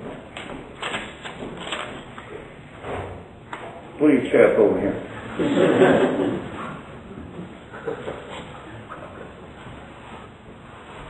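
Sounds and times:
paper rustling: 0.8 - 2.1.

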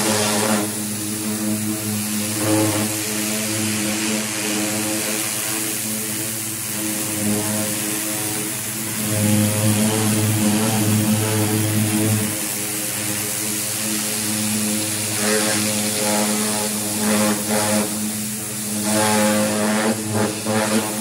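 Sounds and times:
pressure washer pump droning: 0.0 - 21.0
water jet hissing: 0.0 - 21.0.

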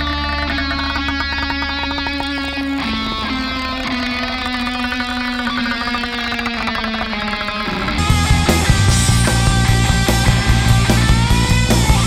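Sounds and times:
distorted electric guitar: 0.0 - 12.0.

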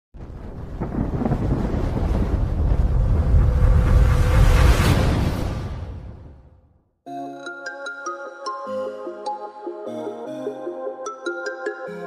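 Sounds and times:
deep rumbling sound effect: 0.2 - 6.8.

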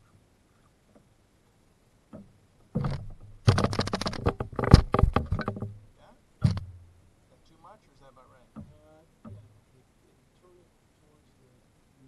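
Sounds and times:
hollow knock with low ring: 2.1 - 7.0, 8.6 - 9.6
rattling knocks on canoe hull: 2.1 - 7.0, 8.5 - 9.6.

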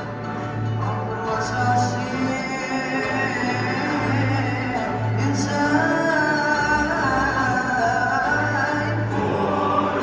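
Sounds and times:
choir singing in harmony: 8.8 - 10.0.

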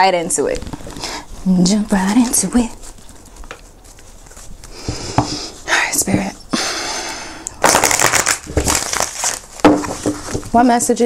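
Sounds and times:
cards being shuffled: 0.5 - 5.5, 7.6 - 10.6.

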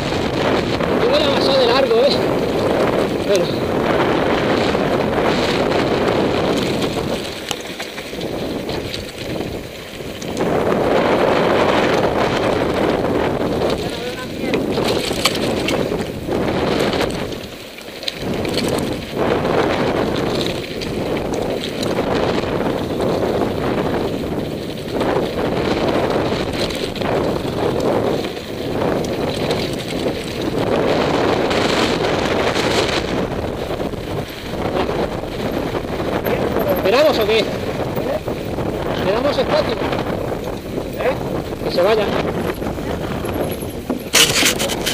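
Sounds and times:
bike rattling and knocking: 0.0 - 44.9
wind buffeting microphone: 0.0 - 44.9
tyres crunching on gravel: 5.2 - 12.8, 40.4 - 44.9.

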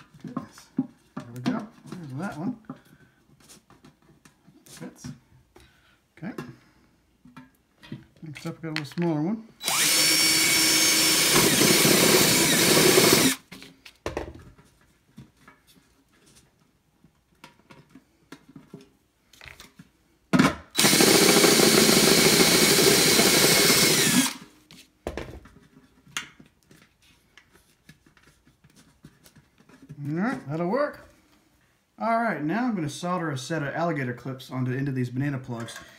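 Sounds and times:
power drill boring through metal lid: 9.6 - 13.4, 20.8 - 24.5.

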